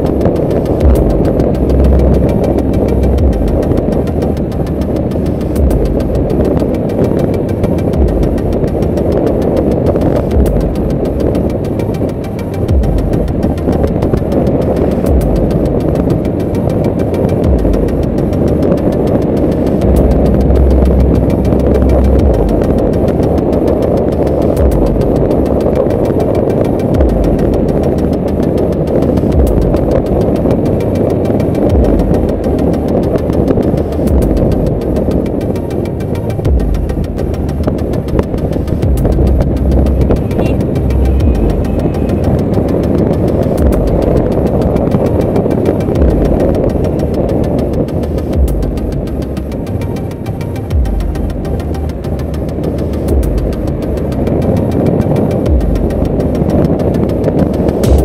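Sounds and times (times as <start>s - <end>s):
low wind buffeting: 0.0s - 58.0s
motorcycle engine cruising: 0.0s - 58.0s
wind rushing on microphone: 0.0s - 58.0s.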